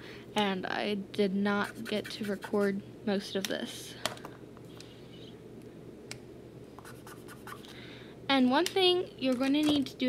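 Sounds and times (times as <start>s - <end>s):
marker scratching on paper: 1.6s - 2.7s, 6.8s - 7.6s.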